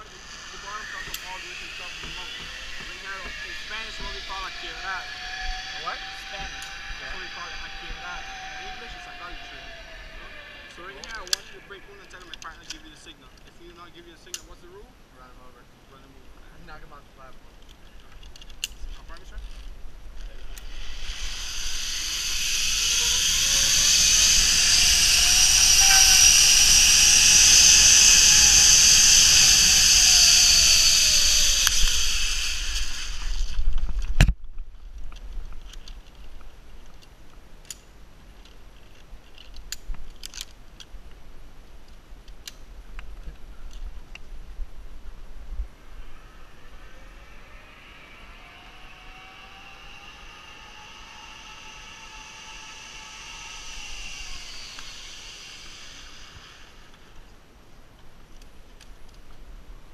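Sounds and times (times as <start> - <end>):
zip line pulleys whirring: 0.0 - 14.7, 17.6 - 40.9, 45.2 - 57.6.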